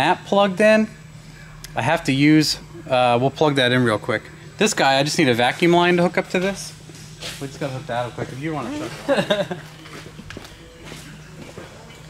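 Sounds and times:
steady low hum: 0.0s - 12.0s
footsteps on concrete floor: 9.6s - 12.0s.

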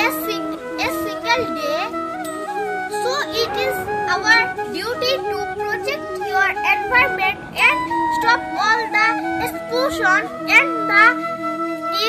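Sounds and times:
boy speaking: 0.0s - 2.0s, 2.9s - 11.2s
soft background music: 0.0s - 12.0s.

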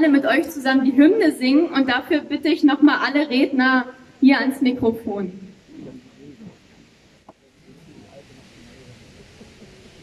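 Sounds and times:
faint murmur of voices outdoors: 0.0s - 10.0s.

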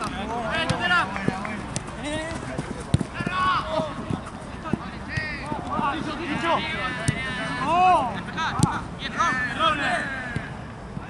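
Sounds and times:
players shouting: 0.0s - 11.0s
running footsteps on turf: 0.5s - 7.2s
ball being kicked: 2.6s - 6.0s.

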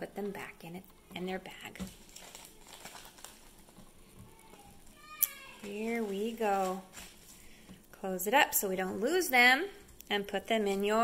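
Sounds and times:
plastic bag crinkling: 1.5s - 7.9s.

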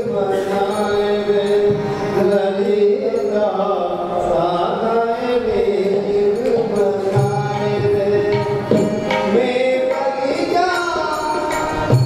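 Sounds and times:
held accompaniment tones: 0.0s - 12.0s.

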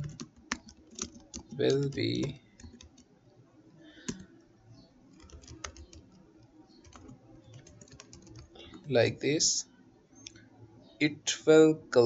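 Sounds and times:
computer keyboard typing: 0.0s - 3.1s, 3.9s - 4.3s, 5.1s - 8.9s.

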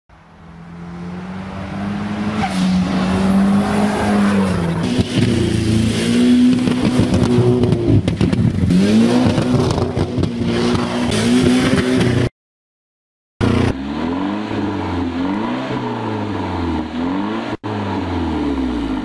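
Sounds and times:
car engine revving high: 0.4s - 12.3s, 13.4s - 19.0s.

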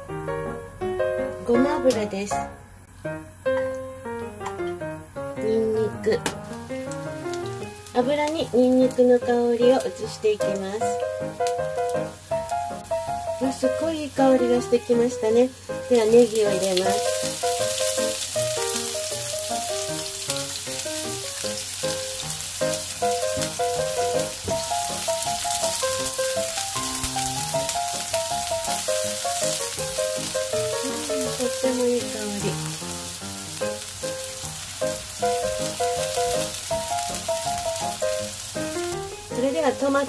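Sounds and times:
background music: 0.0s - 40.0s
onions and garlic sizzling in oil: 0.0s - 40.0s.

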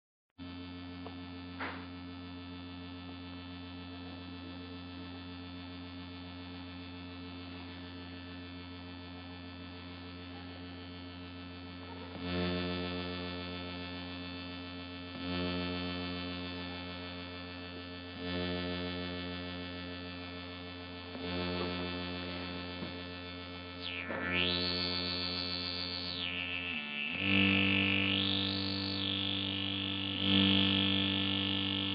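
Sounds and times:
low synthesizer drone: 19.0s - 31.9s
swelling synthesizer note: 21.1s - 31.9s.

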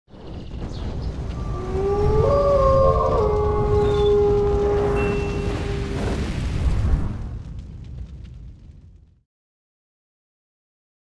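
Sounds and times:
wolves howling: 1.4s - 6.2s.

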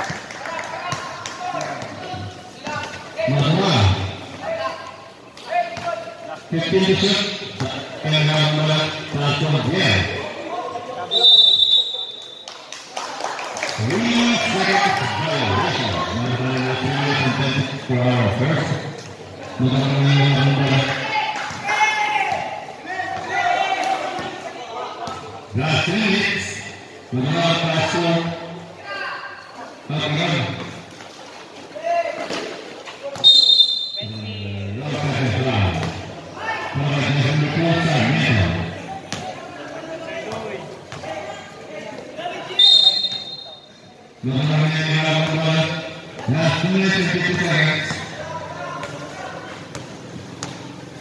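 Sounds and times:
high-pitched whistle: 11.1s - 12.4s, 33.2s - 34.1s, 42.6s - 43.6s
basketball bouncing on concrete: 49.7s - 50.7s.

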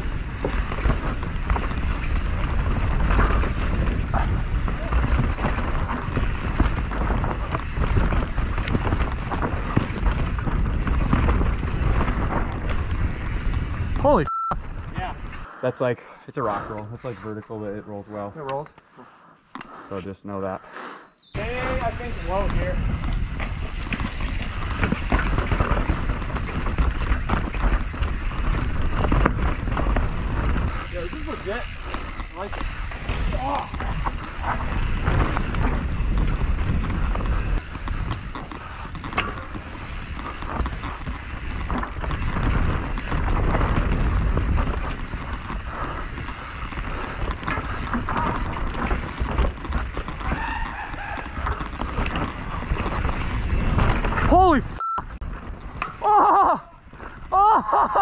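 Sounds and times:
wind rush on microphone: 0.0s - 15.4s, 21.4s - 58.0s
bike rattling over roots: 0.0s - 15.5s, 21.4s - 58.0s
bike tyres on dirt: 0.0s - 58.0s.

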